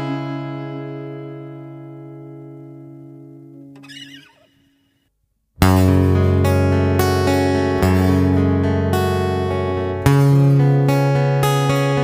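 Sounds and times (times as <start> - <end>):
wavering falling squeak: 3.8 - 4.9.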